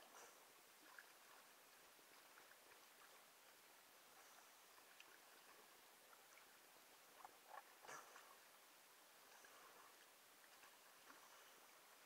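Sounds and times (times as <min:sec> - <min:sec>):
faint water splashes: 0:00.0 - 0:12.0.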